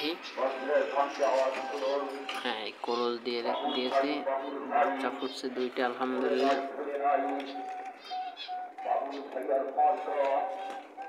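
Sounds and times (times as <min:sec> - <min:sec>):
dove cooing: 0:00.0 - 0:11.0.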